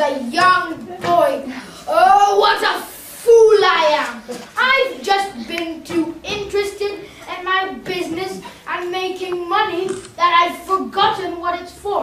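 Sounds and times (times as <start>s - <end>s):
boy speaking: 0.0s - 12.0s.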